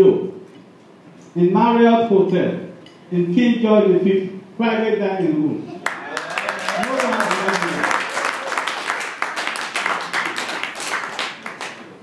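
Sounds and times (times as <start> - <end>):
people clapping: 5.8 - 12.0.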